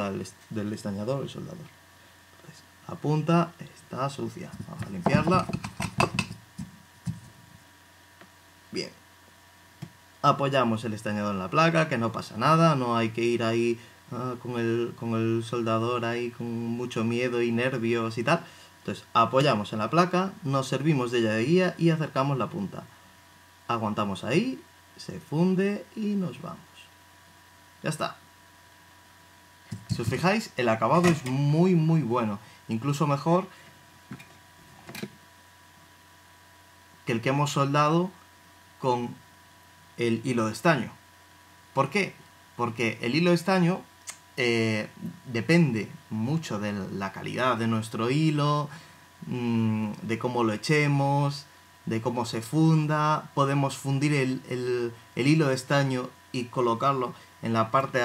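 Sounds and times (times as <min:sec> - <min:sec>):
faint steady hum: 0:00.0 - 0:58.0.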